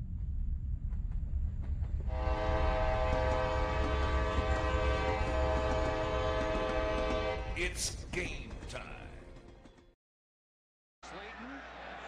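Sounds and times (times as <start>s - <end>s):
locomotive rumbling: 0.0s - 9.8s
train air horn blast: 2.1s - 7.6s.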